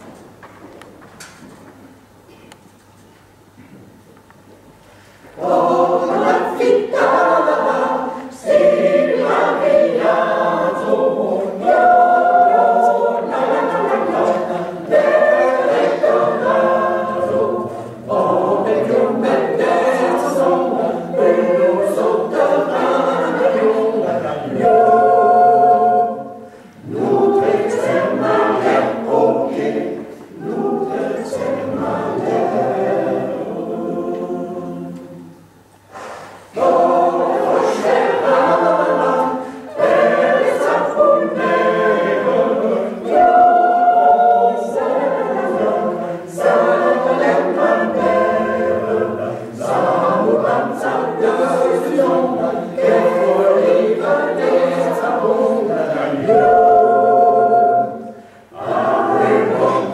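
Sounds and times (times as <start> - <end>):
mixed choir singing a cappella: 5.0 - 59.9.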